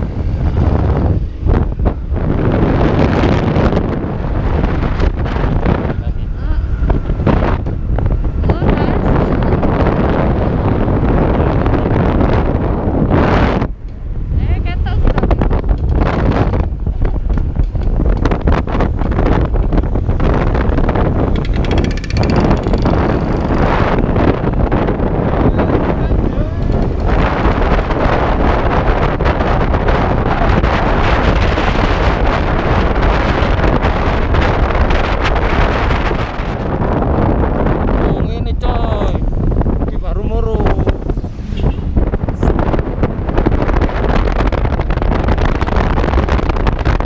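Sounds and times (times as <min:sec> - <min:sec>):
wind buffeting microphone: 0:00.0 - 0:47.0
scooter engine running: 0:20.8 - 0:24.1.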